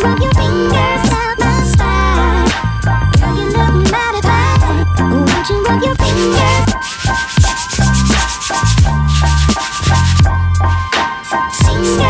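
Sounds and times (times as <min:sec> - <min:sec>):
background music with bass line: 0:00.0 - 0:12.0
sandpaper rubbing on plastic: 0:06.4 - 0:10.3.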